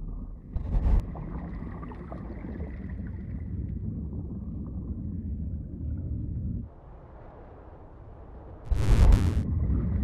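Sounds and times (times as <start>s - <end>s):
low steady rumbling: 0.0s - 6.7s.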